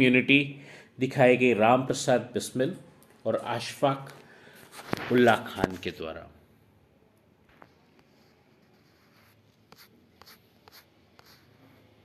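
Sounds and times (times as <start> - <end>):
faint ticks and scratches: 7.5 - 11.9.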